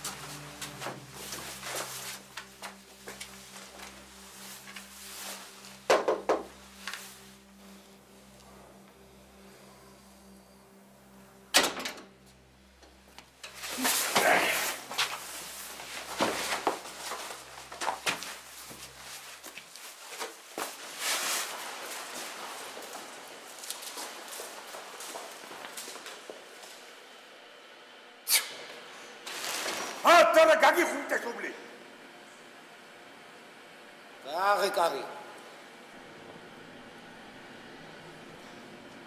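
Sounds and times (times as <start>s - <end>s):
low steady hum: 0.0s - 29.6s, 30.8s - 39.0s
scuffling rustling and knocks: 13.5s - 26.2s.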